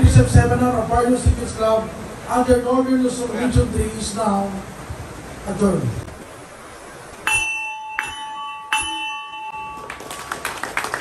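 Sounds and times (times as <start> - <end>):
gong struck with mallet: 7.3 - 9.9
applause: 9.7 - 11.0.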